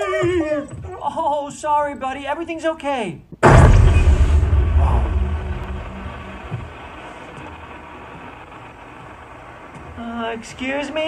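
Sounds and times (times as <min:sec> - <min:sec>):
deep low rumble: 0:03.4 - 0:07.8.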